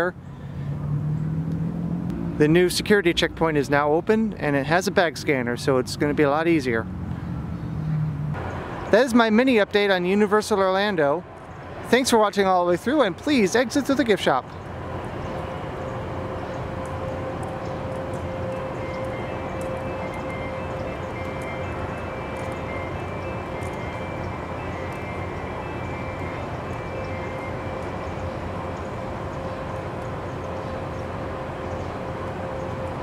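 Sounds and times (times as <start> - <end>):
constant humming tone: 0.0 - 33.0
outdoor background rush: 0.0 - 33.0.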